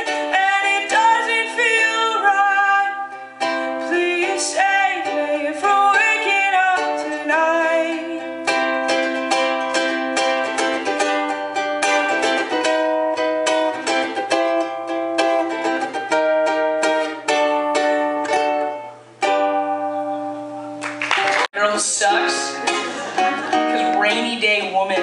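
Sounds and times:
ukulele strumming chords: 0.0 - 25.0.

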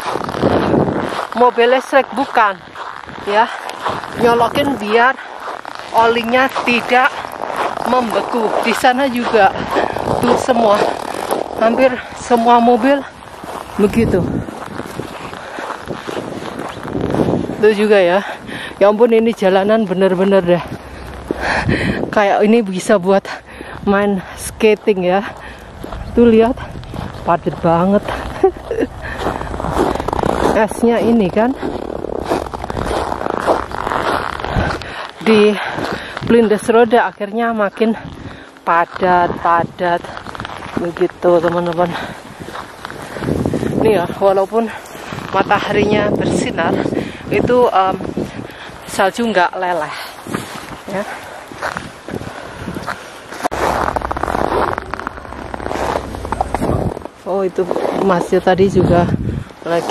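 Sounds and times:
footsteps on snow and ice: 0.0 - 59.9
rustling close to microphone: 0.0 - 59.9.

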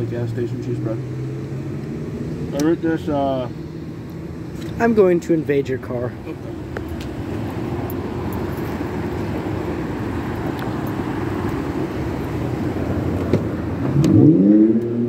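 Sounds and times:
vehicle engine hum: 0.0 - 15.0.

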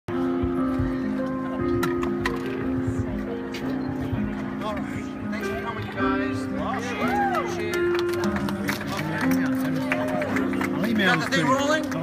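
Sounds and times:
crowd talking: 0.1 - 12.0.

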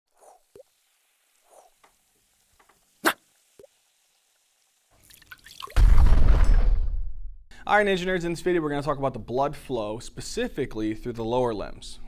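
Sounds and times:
rising fizz: 0.1 - 5.9
cartoon liquid drips and plops: 0.2 - 2.0, 2.8 - 4.0, 4.9 - 5.8
loud explosion: 5.8 - 7.4.

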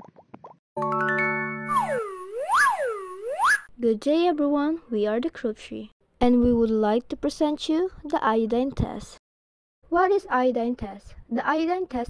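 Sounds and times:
electronic swooping tone: 1.7 - 3.7.

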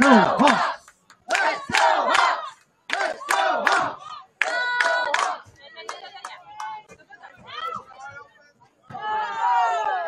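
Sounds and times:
spectators shouting together: 0.0 - 5.4.

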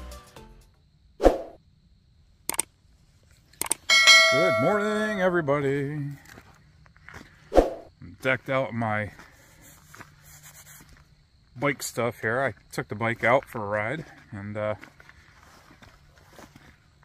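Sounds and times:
clicks: 2.5 - 2.7, 3.5 - 3.9
bell-like ding: 3.9 - 5.2.

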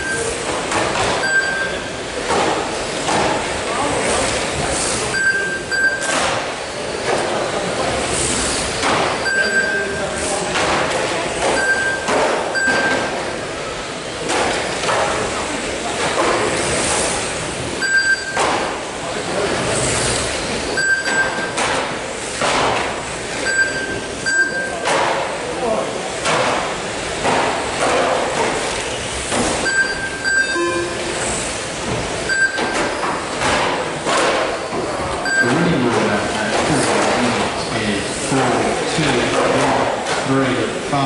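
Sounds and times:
short high electronic beeps: 1.2 - 2.0, 5.1 - 6.1, 11.6 - 13.1, 17.8 - 18.4, 20.8 - 21.5, 23.4 - 24.7, 29.6 - 31.2, 32.3 - 32.8, 35.2 - 35.6.

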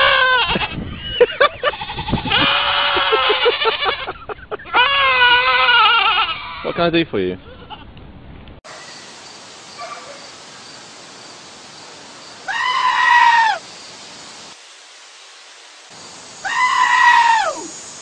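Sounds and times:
sheep screaming: 0.0 - 0.7, 1.7 - 6.8, 12.5 - 13.6, 16.4 - 17.7.

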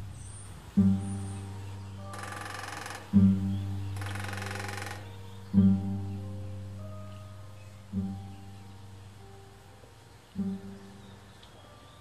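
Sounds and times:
plucked guitar-like music: 0.0 - 11.8
bird drumming on metal vent: 0.8 - 5.9.

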